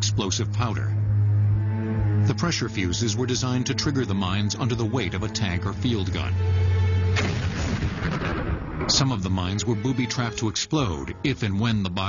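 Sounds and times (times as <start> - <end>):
explosion rumble: 7.1 - 9.6
landmine explosion: 7.2 - 9.3.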